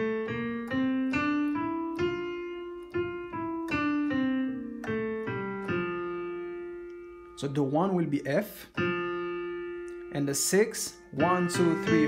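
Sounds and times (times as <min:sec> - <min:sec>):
digital piano playing a scale: 0:00.0 - 0:12.0.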